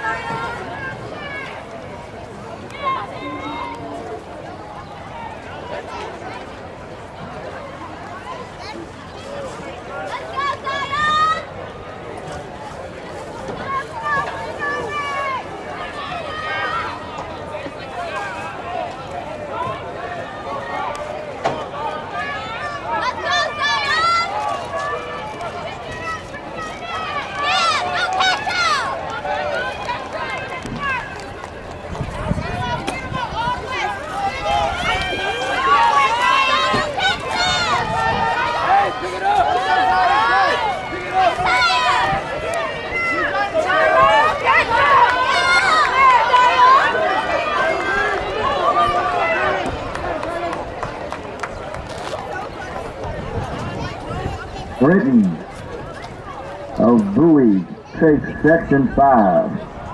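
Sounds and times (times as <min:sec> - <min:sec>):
spectators chattering: 0:00.0 - 0:59.9.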